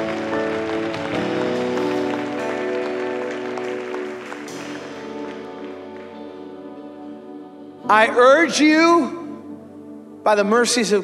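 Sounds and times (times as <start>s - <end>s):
worship band held chords: 0.0s - 11.0s.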